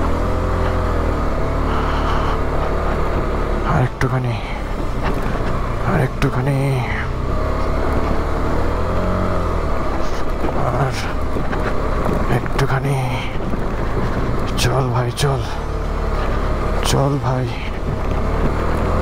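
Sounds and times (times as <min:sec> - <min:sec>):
motorcycle engine rumbling: 0:00.0 - 0:19.0.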